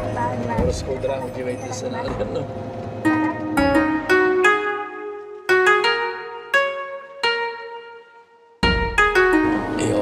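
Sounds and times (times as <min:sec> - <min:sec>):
bus engine and tyres rumbling: 0:00.0 - 0:06.5.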